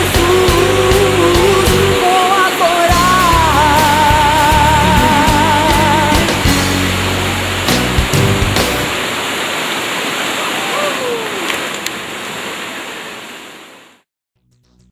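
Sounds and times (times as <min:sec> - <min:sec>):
gospel band with bass and drums: 0:00.0 - 0:09.0
water rushing over rapids: 0:00.0 - 0:14.1.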